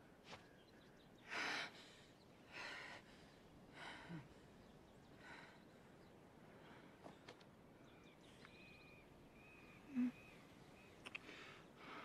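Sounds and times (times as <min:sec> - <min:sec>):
faint bird calls: 0:00.3 - 0:12.0.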